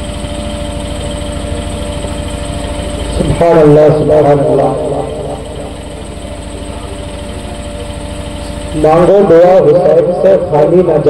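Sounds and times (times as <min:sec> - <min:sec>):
engine idling: 0:00.0 - 0:11.0
faint hum: 0:00.0 - 0:11.0.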